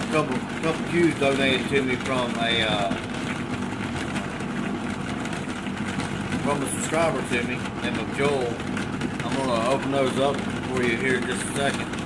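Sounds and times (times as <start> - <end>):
billiard balls tumbling and ticking: 0.0 - 12.0
electric motor running: 0.0 - 12.0.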